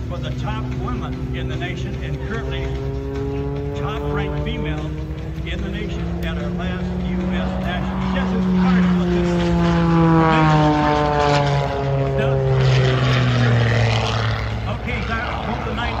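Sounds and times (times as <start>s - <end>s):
propeller airplane engine overhead: 0.0s - 16.0s.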